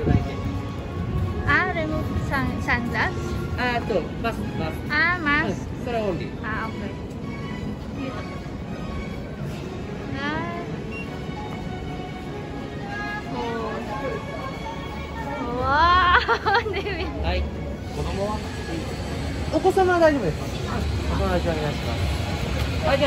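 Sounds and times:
faint background music: 0:00.0 - 0:23.0.

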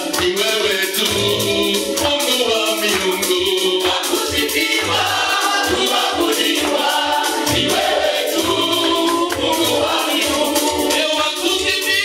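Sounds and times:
group singing gospel song: 0:00.0 - 0:12.0
music with steady beat: 0:00.0 - 0:12.0.

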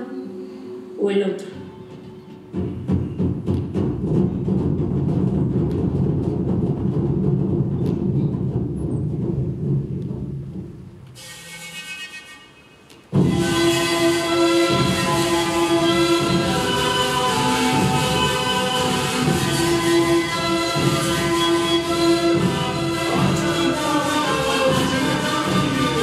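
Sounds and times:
music with sustained notes: 0:00.0 - 0:10.2, 0:11.1 - 0:26.0.

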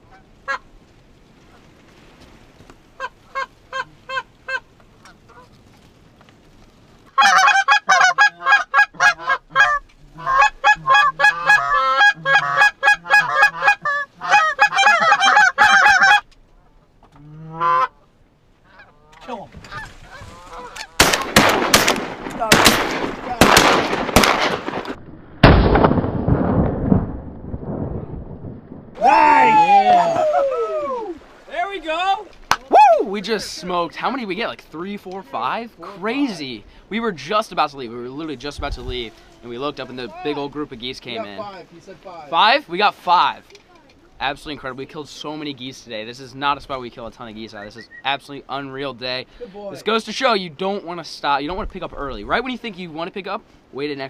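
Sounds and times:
geese honking: 0:00.0 - 0:00.7, 0:03.0 - 0:05.5, 0:07.1 - 0:21.1
shotgun shots: 0:21.0 - 0:26.7.

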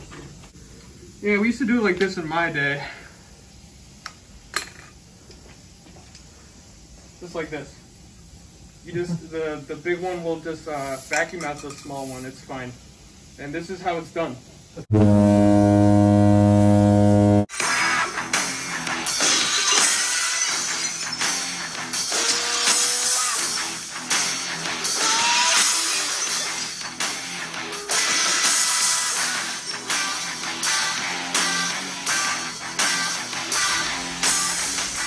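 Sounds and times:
low error buzzer: 0:14.9 - 0:17.5
rock music with guitar: 0:17.5 - 0:35.0.

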